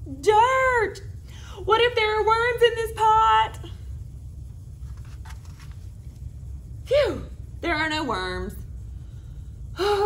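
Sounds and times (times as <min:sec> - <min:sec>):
low room hum: 0:00.0 - 0:10.0
book page turning: 0:04.8 - 0:06.2.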